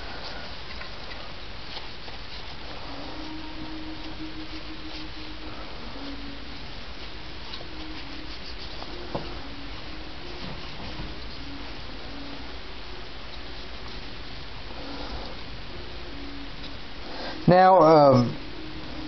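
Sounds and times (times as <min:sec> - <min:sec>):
paper towel rubbing plastic: 0:00.0 - 0:15.5
faint steady hum: 0:00.0 - 0:19.0
steady hiss: 0:00.0 - 0:19.0.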